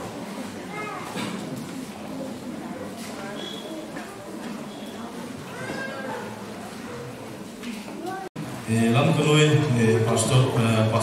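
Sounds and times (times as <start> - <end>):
indistinct talking in echoing hall: 0.0 - 11.0.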